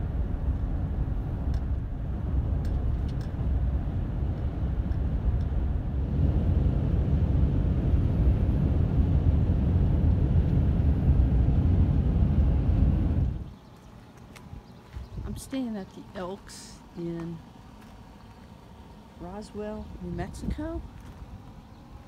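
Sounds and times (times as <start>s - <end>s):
vehicle road and engine rumble: 0.0s - 22.0s.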